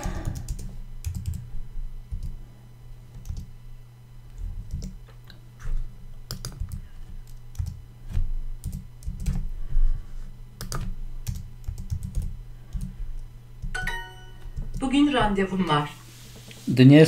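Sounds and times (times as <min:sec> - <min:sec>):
computer keyboard typing: 0:00.0 - 0:01.5, 0:02.1 - 0:02.4, 0:03.1 - 0:03.5, 0:04.4 - 0:05.0, 0:06.3 - 0:09.4, 0:10.6 - 0:13.0, 0:13.6 - 0:14.9
bright chime ding: 0:13.8 - 0:14.5.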